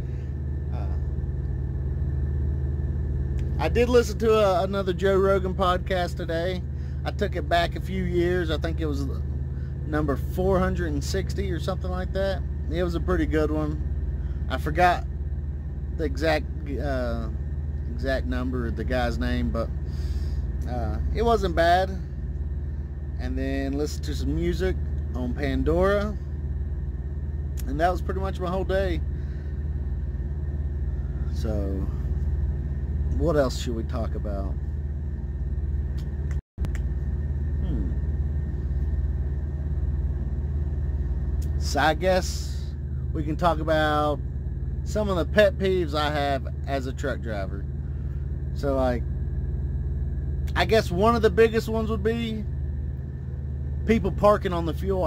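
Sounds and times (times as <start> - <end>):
diesel engine idling: 0.0 - 55.0.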